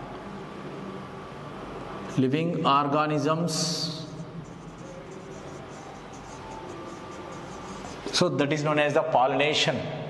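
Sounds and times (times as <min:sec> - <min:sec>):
marker writing on whiteboard: 0:03.6 - 0:08.6.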